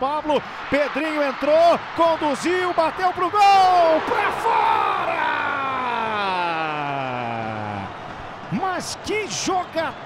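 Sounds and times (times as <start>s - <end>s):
faint stadium crowd: 0.0s - 10.0s.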